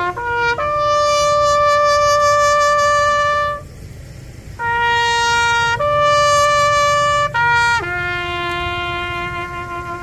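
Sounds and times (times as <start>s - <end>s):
trumpet holding long note: 0.0s - 3.7s, 4.6s - 10.0s.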